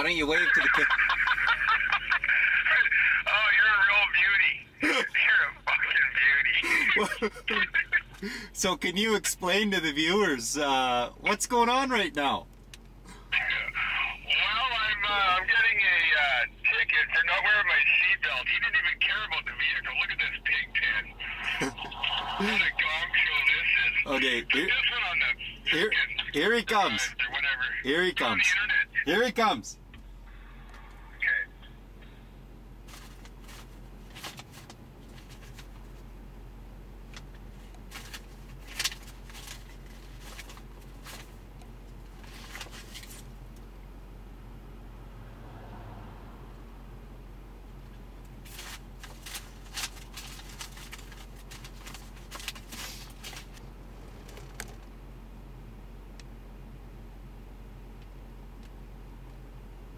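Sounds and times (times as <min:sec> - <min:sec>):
low hum in vehicle cab: 0:00.0 - 0:59.9
faint clicks and rustles: 0:32.8 - 0:36.1, 0:37.1 - 0:43.7, 0:47.9 - 0:55.0.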